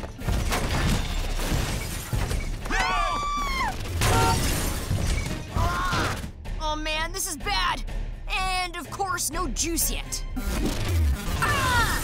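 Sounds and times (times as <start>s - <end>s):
glass shattering: 0.3s - 2.6s, 3.9s - 5.3s.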